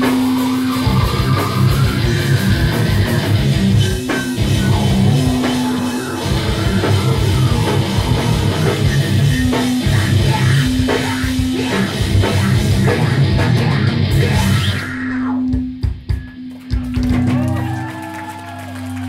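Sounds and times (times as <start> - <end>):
metal band playing live: 0.0 - 17.9.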